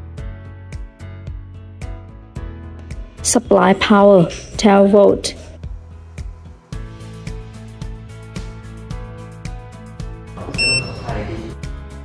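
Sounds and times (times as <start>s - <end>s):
background music with steady beat: 0.0s - 12.0s
short high-pitched electronic beep: 10.6s - 11.1s.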